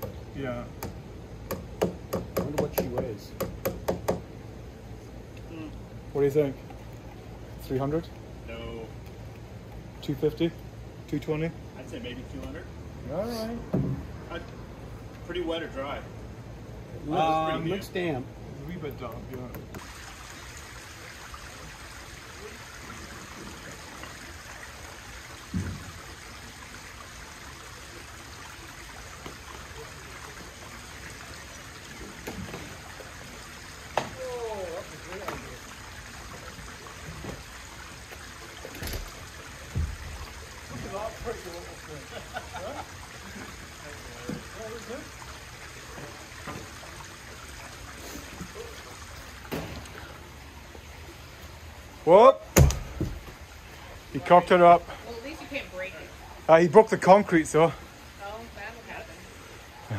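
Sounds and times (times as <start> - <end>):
outdoor hiss: 0.0 - 59.9
heavy log thudding on ground: 52.6 - 53.4.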